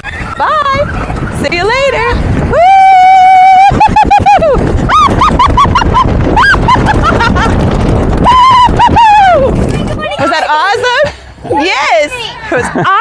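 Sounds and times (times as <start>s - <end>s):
people whooping: 2.4s - 6.8s, 8.2s - 9.6s
people laughing: 3.5s - 7.7s, 12.3s - 13.0s.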